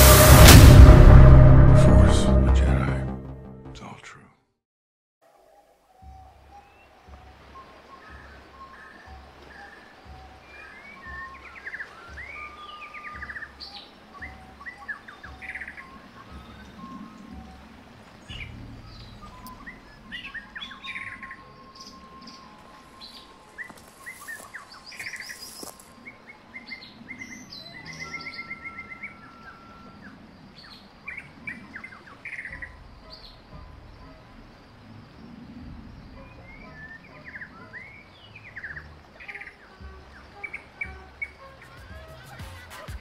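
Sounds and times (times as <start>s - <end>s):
low rumble: 0.0s - 3.5s
birds chirping and singing: 5.5s - 43.0s.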